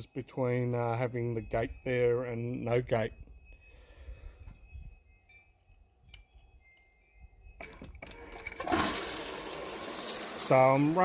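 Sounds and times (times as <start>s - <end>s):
light high clinks: 0.5s - 8.2s.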